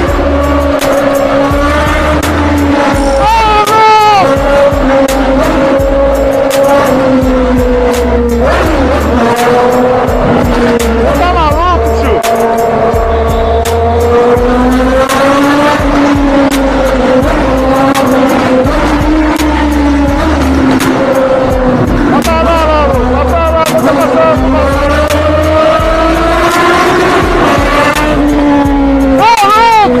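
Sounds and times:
motorcycle engine running: 0:00.0 - 0:30.0
music with pulsing bass beat: 0:00.0 - 0:30.0.

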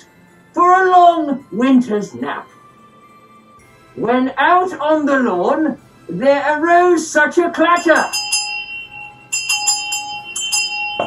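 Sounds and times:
sleigh bells shaken: 0:07.7 - 0:11.0.

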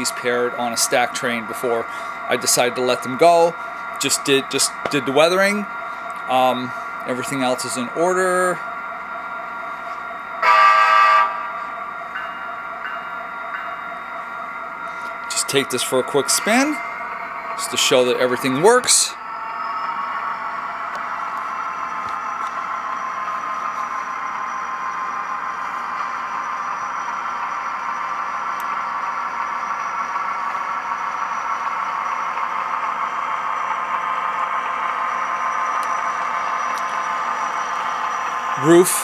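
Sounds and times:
model diesel engine sound: 0:00.0 - 0:39.0
thin high whine: 0:11.2 - 0:31.6.

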